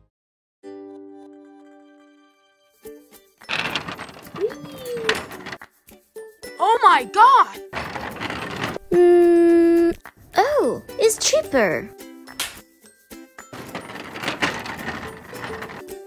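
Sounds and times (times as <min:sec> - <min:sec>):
noisy rustling: 0:03.5 - 0:05.6, 0:07.7 - 0:08.9.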